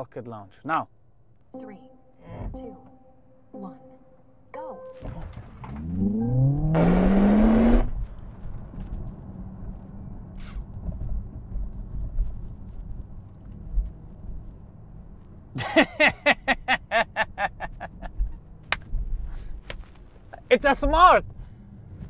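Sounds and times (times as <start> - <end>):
road noise rumble: 5.0 - 22.0
electric motor whine rising: 5.6 - 8.0.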